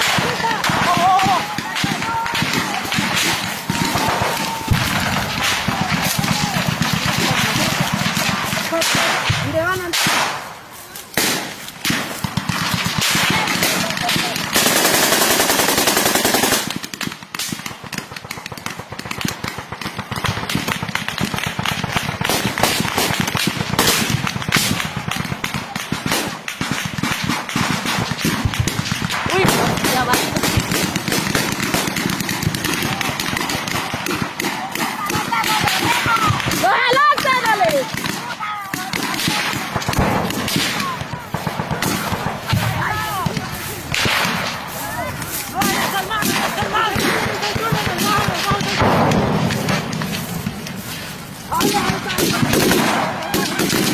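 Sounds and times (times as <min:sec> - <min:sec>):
men shouting: 0:00.0 - 0:09.0
rifle gunfire: 0:00.0 - 0:53.9.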